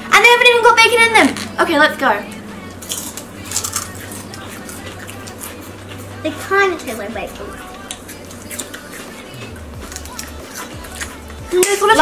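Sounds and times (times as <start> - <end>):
crunchy snack being chewed: 2.8 - 5.6, 7.8 - 11.7.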